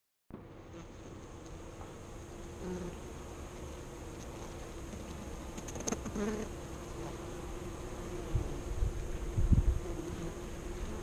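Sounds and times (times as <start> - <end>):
honeybees buzzing: 0.4 - 11.0.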